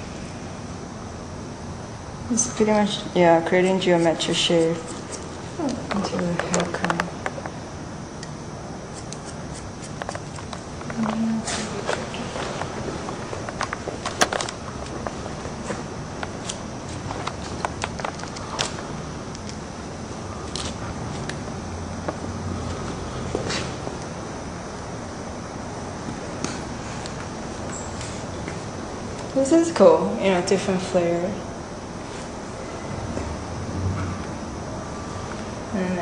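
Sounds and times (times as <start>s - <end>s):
room noise: 0.0s - 36.0s
scissors snipping hair: 8.9s - 10.6s.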